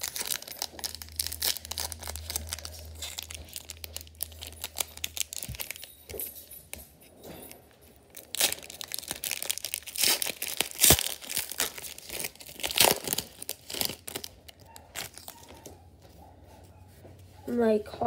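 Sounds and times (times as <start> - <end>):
wrapper crinkling and tearing: 0.0 - 6.3, 7.4 - 15.8.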